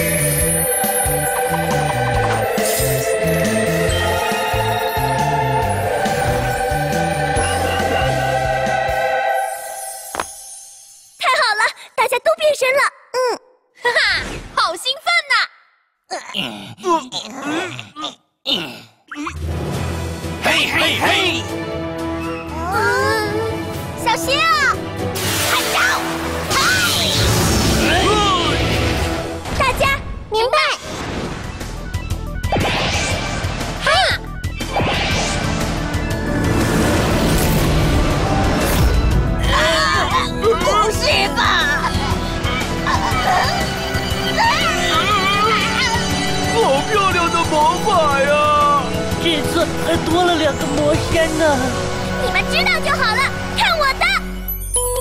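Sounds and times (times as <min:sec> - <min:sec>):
background music: 0:00.0 - 0:11.1, 0:19.2 - 0:55.0
cartoon character voices: 0:25.5 - 0:28.6.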